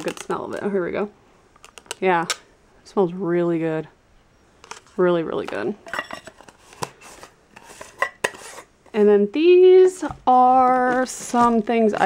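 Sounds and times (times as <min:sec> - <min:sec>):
faint scraping of jar: 0:05.8 - 0:08.7.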